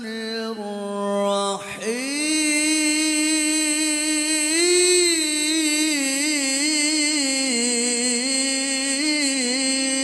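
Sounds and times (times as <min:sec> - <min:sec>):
man chanting through a microphone: 0:00.0 - 0:10.0.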